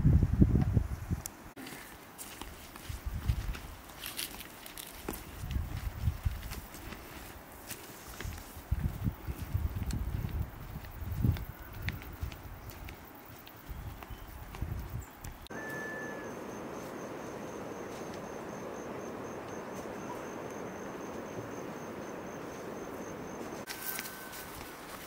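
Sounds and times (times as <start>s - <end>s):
steady outdoor hiss: 0.0s - 25.0s
footsteps on dirt path: 1.6s - 15.5s, 16.6s - 25.0s.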